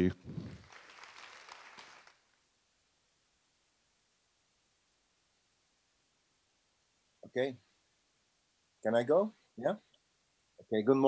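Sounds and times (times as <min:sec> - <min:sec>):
faint audience applause: 0:00.0 - 0:02.4.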